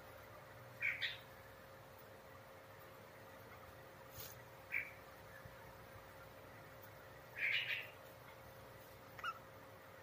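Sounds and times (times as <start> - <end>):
faint steady hum: 0.0 - 10.0
budgerigar chirping: 0.8 - 1.3, 4.7 - 5.0, 7.4 - 8.0, 9.2 - 9.5.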